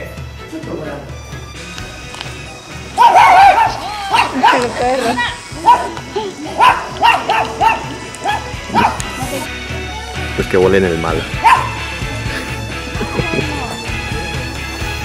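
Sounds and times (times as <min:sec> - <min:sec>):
small dogs yapping: 0:03.0 - 0:09.5, 0:11.4 - 0:11.8.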